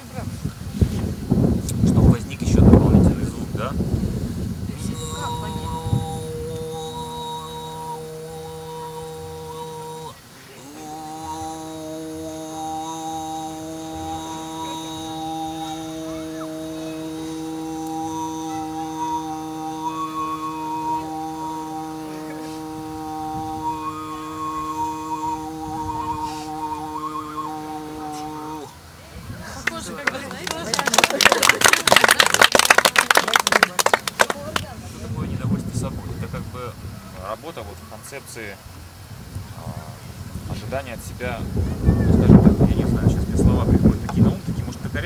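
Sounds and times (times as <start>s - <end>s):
overtone singing: 4.7s - 28.8s.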